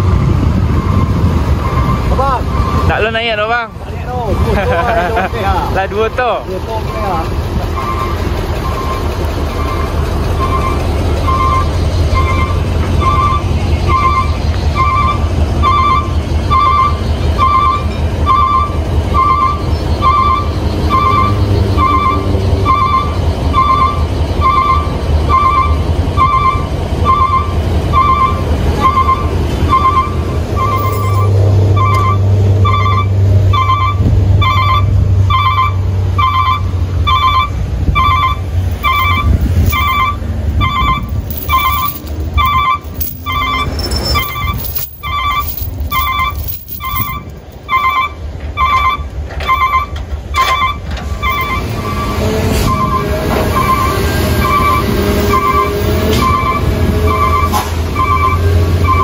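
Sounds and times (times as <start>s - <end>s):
diesel engine idling: 0.0s - 59.0s
truck reversing alarm beeping: 0.3s - 3.4s, 6.8s - 59.0s
metallic chain clanks: 30.6s - 31.4s, 38.7s - 48.0s.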